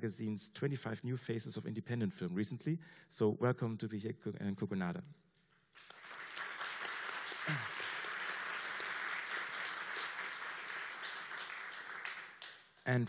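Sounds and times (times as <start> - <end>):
audience applauding: 5.7 - 13.0.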